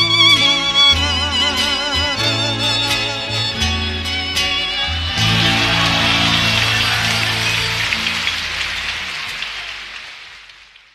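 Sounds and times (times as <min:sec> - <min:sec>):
orchestra held chord: 0:05.2 - 0:08.8
audience applauding: 0:05.2 - 0:10.9.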